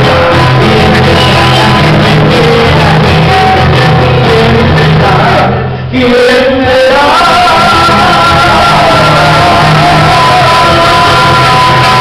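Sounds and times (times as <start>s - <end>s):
acoustic guitar: 0.0s - 12.0s
men singing: 0.0s - 12.0s.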